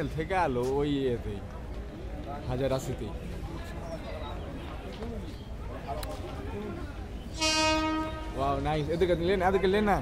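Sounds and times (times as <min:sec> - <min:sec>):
murmur of voices: 0:00.0 - 0:10.0
train horn blast: 0:07.3 - 0:08.6.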